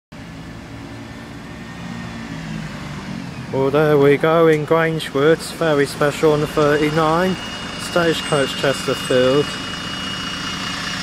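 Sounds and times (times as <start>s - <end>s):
bus diesel engine running: 0.2s - 11.0s.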